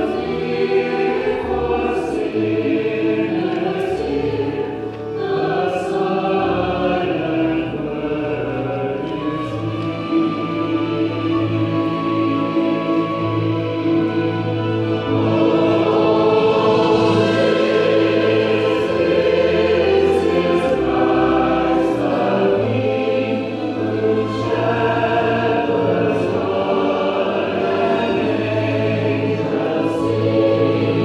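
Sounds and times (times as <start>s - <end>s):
mixed choir singing: 0.0s - 31.0s.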